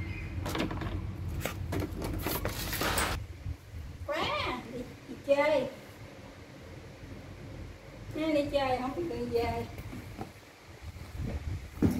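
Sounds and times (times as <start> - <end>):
low background hiss: 3.2 - 11.6.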